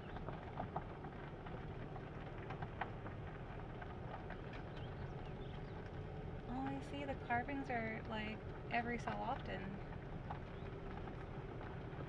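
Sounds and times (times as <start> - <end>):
car rumbling over gravel road: 0.0 - 12.0
grit ticking under tyres: 0.0 - 12.0.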